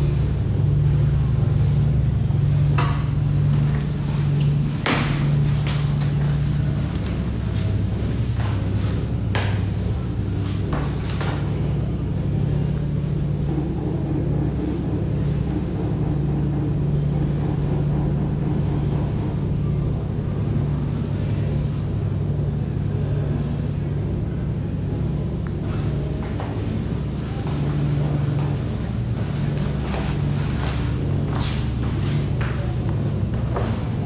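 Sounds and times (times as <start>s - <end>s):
low mechanical hum: 0.0s - 34.0s.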